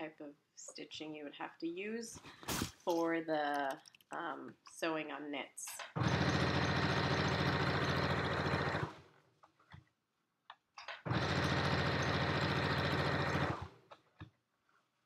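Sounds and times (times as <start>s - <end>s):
sewing machine stitching: 5.8s - 9.0s, 10.9s - 13.8s.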